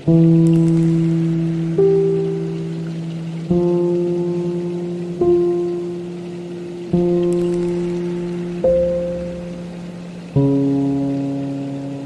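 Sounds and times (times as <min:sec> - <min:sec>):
faint hiss of running water: 0:00.0 - 0:12.0
soft sustained ambient chords: 0:00.0 - 0:12.0.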